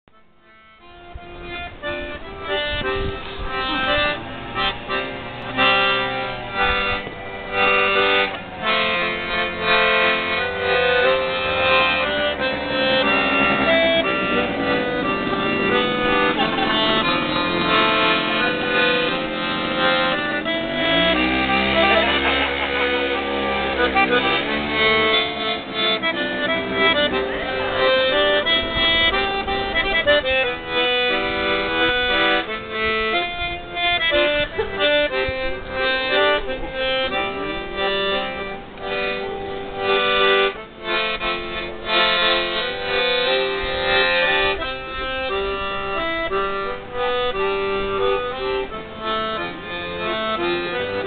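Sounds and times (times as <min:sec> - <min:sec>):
accordion playing a tune: 0:00.1 - 0:51.0.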